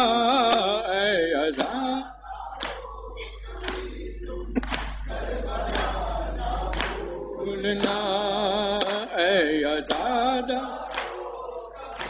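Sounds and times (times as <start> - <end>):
men chanting in chorus: 0.0 - 12.0.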